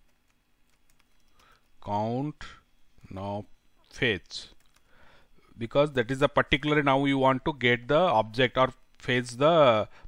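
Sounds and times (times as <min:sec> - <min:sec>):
computer keyboard typing: 0:00.0 - 0:01.8, 0:04.2 - 0:04.9.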